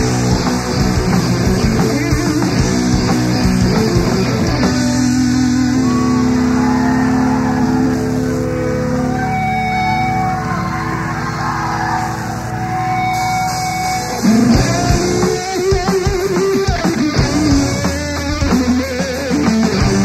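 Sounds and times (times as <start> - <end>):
distorted electric guitars: 0.0 - 20.0.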